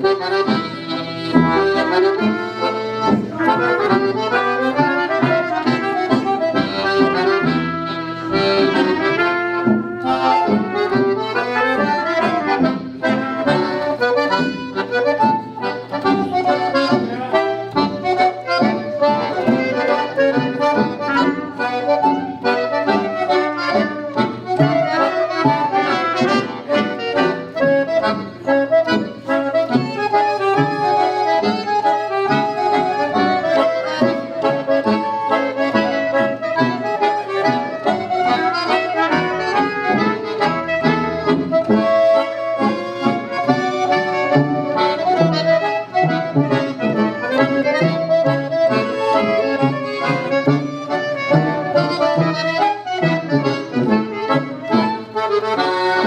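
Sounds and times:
concertina playing chords: 0:00.0 - 0:56.0
tuba playing bass notes: 0:00.0 - 0:56.0.

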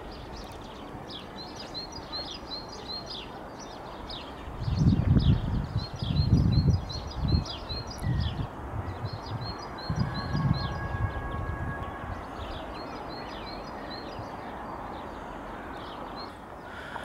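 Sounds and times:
songbird chirping: 0:00.0 - 0:17.0
wind rumble on microphone: 0:04.0 - 0:14.9.

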